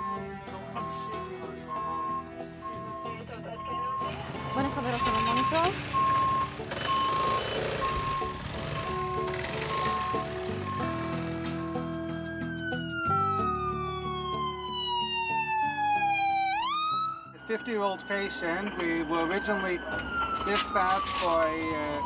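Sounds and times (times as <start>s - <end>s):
high electronic beep: 0.0s - 11.0s
ambulance siren wailing: 0.0s - 22.0s
background music with held notes: 0.0s - 22.0s.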